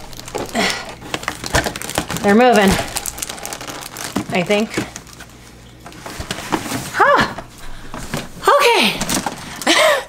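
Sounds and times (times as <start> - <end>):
plastic totes creaking and scraping: 0.0 - 7.0.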